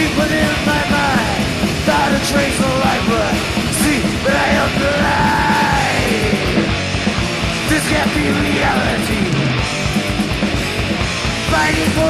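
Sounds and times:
distorted guitars: 0.0 - 12.0
fast drumming: 0.0 - 12.0
person yelling vocals: 3.8 - 6.7.

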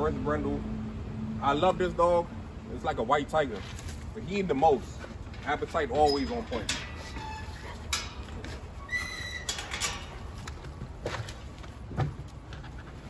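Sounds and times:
wire-mesh gate clanking: 3.8 - 11.3
gate squeak: 5.5 - 10.4.

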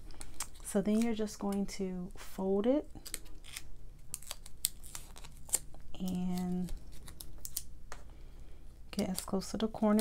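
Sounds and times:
foil paper crackling: 3.0 - 7.7.

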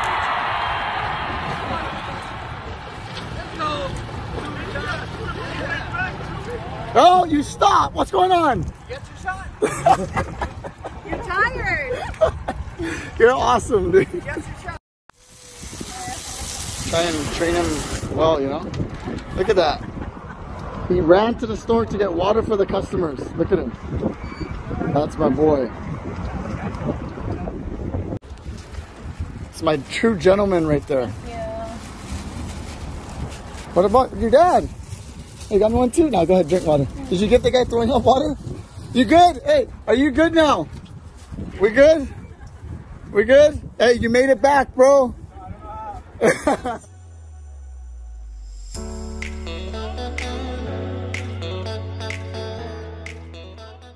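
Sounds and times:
wind rumble on microphone: 0.0 - 4.8, 7.9 - 46.9
water hissing: 15.2 - 18.1.

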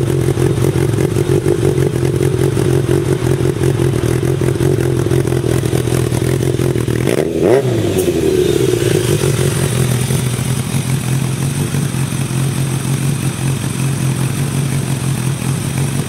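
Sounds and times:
motorcycle engine revving and idling: 0.0 - 16.0.

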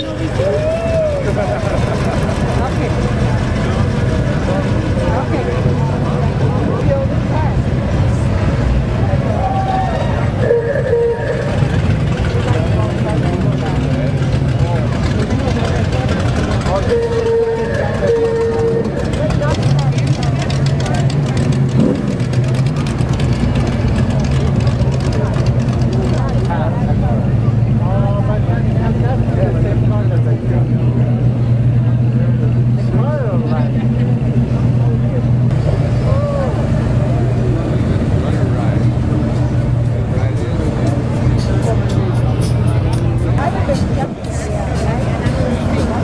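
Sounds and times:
crowd chatter: 0.0 - 46.0.

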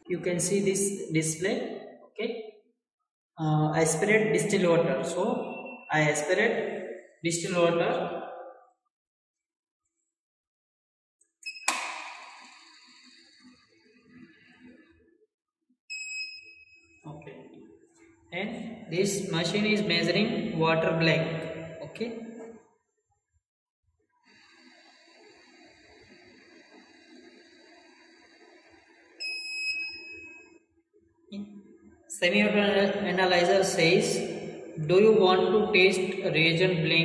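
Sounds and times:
high-pitched electronic beep: 5.2 - 6.3
electronic beep: 5.3 - 6.2, 11.4 - 12.6, 29.2 - 30.5
high ringing tone: 29.2 - 30.6.

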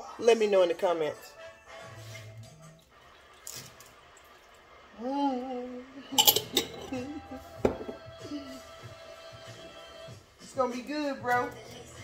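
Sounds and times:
television playing low: 0.0 - 12.0
glass jar clinking: 6.1 - 8.0.

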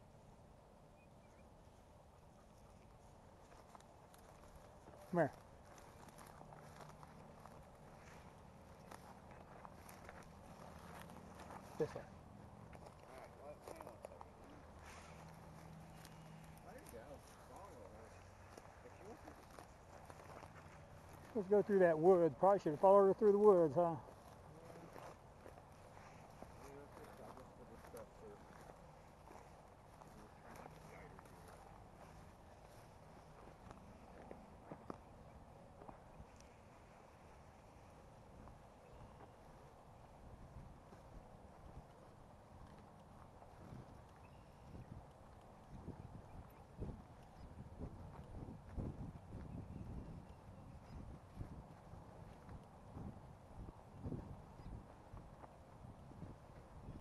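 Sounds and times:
footsteps crunching outdoors: 0.0 - 57.0.

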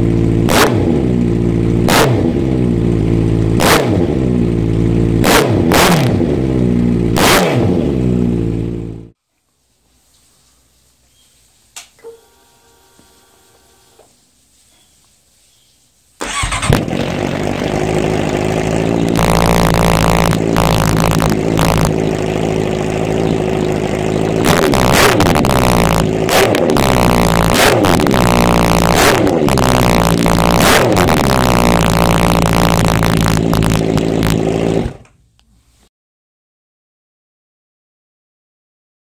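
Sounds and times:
motorcycle engine idling and revving: 0.0 - 9.2, 16.2 - 35.2.

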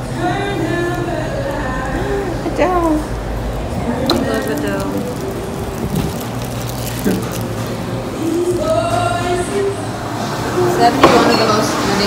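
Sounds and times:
people talking indistinctly: 1.6 - 9.9.

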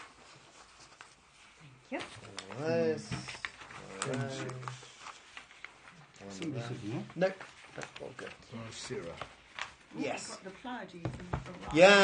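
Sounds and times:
paper crackling: 0.0 - 12.0
man speaking: 6.2 - 9.2, 11.7 - 12.0.

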